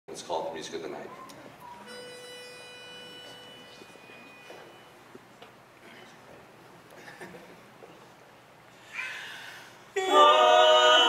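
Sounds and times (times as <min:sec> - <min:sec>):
pitch pipe note: 0:01.6 - 0:05.0
vocal quartet singing: 0:09.9 - 0:11.0.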